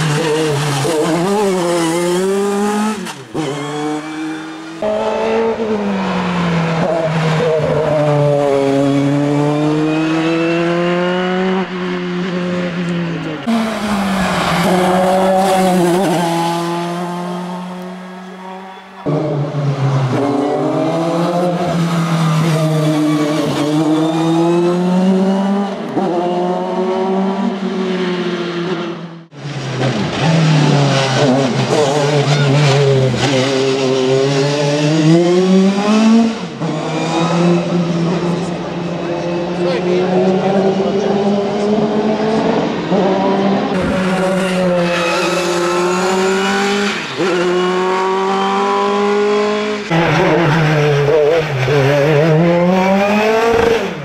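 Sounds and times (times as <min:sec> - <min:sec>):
race car engine at full revs: 0:00.0 - 0:54.0.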